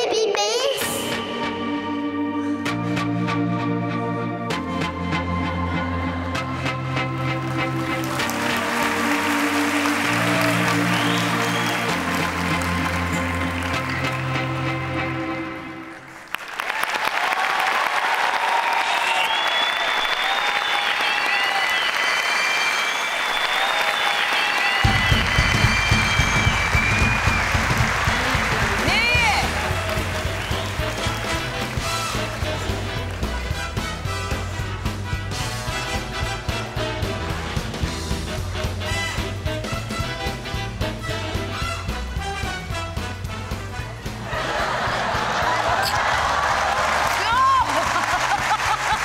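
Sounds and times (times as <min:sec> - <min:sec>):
audience applauding and cheering: 0:05.1 - 0:49.0
music with repeating bass line: 0:24.9 - 0:44.0.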